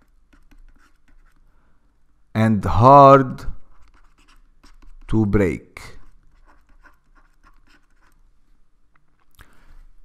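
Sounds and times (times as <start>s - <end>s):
stylus scratching on tablet: 0.0s - 1.5s, 3.5s - 8.2s.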